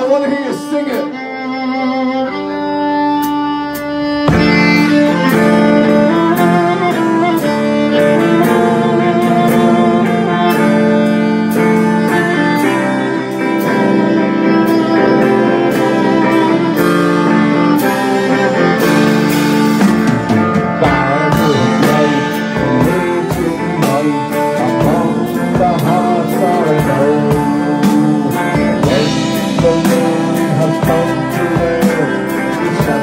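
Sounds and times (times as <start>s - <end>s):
fiddle melody: 0.0s - 33.0s
folk metal band playing: 0.0s - 33.0s.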